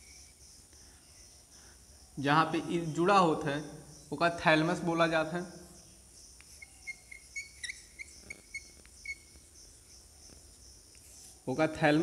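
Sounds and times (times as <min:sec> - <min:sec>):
chalk squeaking on blackboard: 0:06.5 - 0:09.4.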